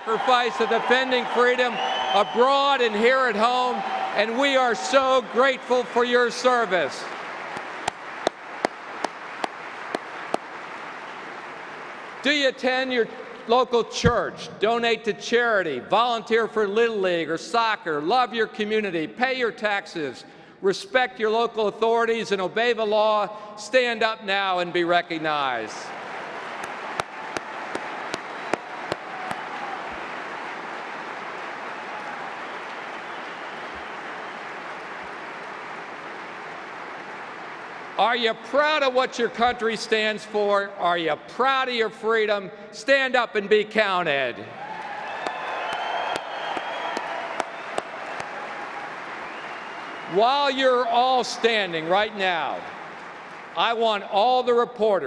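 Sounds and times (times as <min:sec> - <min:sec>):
audience applause: 0:00.0 - 0:12.3, 0:25.9 - 0:38.1, 0:44.6 - 0:53.6
close hand claps: 0:06.7 - 0:12.3, 0:25.9 - 0:38.0, 0:44.7 - 0:50.1, 0:52.0 - 0:53.7.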